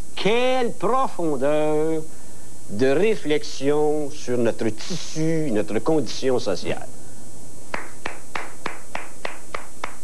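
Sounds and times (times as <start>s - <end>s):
person clapping slowly: 7.7s - 10.0s.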